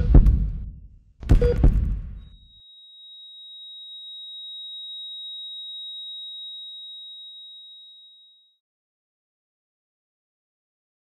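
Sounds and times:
basketball bounce on hardwood: 1.2s - 2.2s
high electronic flatline beep: 1.3s - 8.5s.

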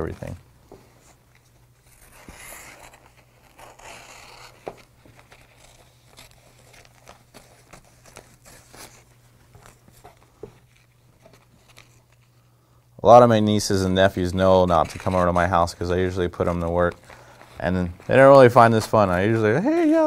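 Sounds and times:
low steady hum: 0.0s - 20.0s
paper crinkling: 1.0s - 12.5s, 14.0s - 20.0s.

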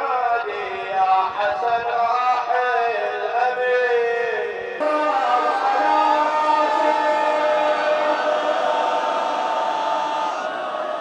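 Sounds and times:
man chanting an elegy: 0.0s - 8.6s.

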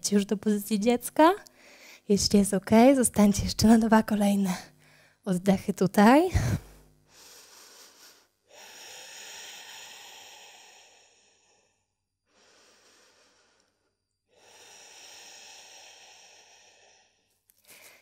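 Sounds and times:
person breathing slowly: 1.6s - 2.1s, 6.5s - 18.0s.

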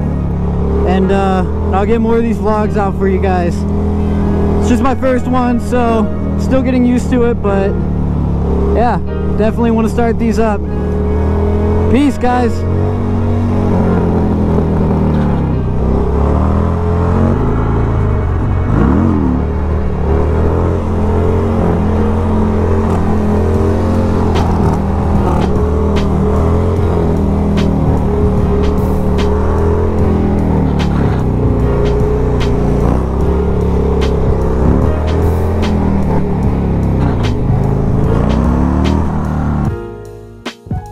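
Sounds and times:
motorcycle engine revving: 0.0s - 39.8s
background music with beat: 22.4s - 40.9s.

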